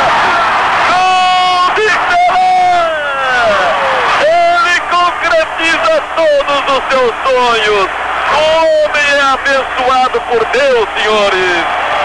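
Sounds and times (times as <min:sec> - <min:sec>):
stadium crowd cheering: 0:00.0 - 0:12.0
commentator shouting: 0:00.8 - 0:11.7.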